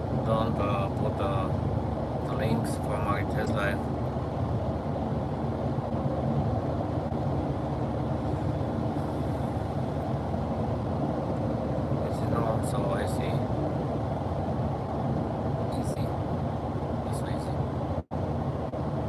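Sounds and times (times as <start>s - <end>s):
car road and engine noise: 0.0s - 19.0s.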